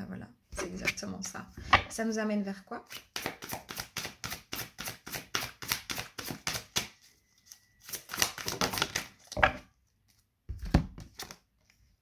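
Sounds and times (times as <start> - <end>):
cards shuffling: 2.9 - 9.4, 10.1 - 11.4.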